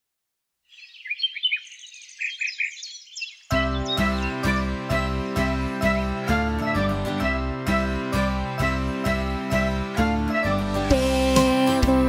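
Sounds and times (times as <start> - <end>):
birds chirping and twittering: 0.6 - 6.1.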